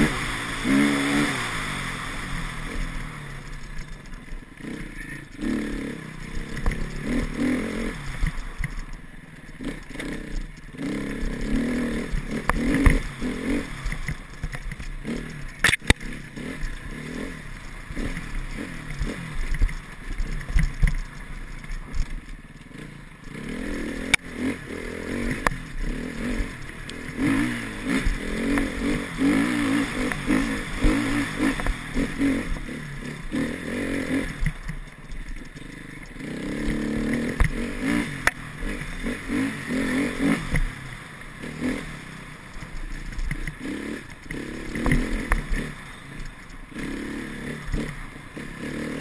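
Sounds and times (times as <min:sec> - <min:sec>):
motorcycle engine revving: 0:00.0 - 0:49.0
bike knocking and rattling: 0:02.8 - 0:49.0.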